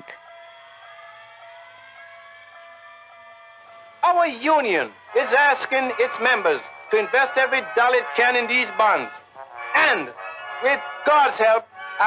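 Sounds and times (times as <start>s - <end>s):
siren with gliding tones: 0.1s - 4.0s.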